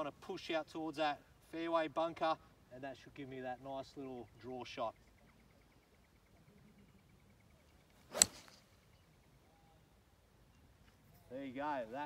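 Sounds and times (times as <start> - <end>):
golf club striking ball: 8.1 - 8.7.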